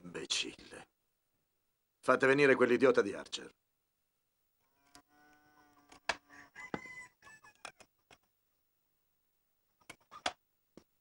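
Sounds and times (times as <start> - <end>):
farmyard animal calls: 4.7 - 7.6.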